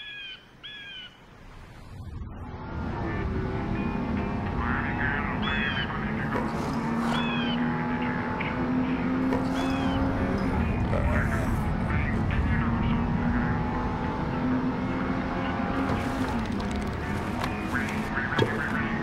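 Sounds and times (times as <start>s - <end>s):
car engine running: 2.0s - 19.0s.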